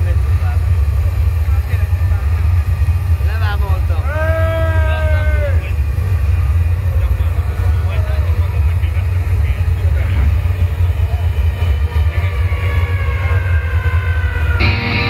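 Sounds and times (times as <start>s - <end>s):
crowd voices: 0.0s - 15.0s
deep bass drone: 0.0s - 15.0s
distorted electric guitar chords: 5.8s - 15.0s.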